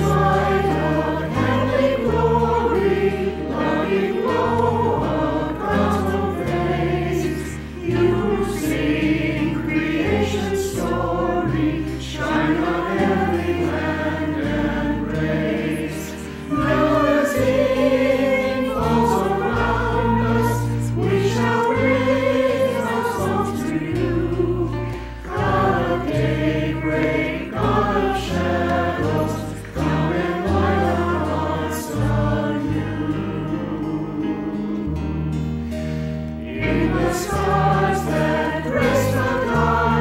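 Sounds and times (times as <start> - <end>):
acoustic guitar: 0.0 - 40.0
choir singing a hymn: 0.0 - 40.0.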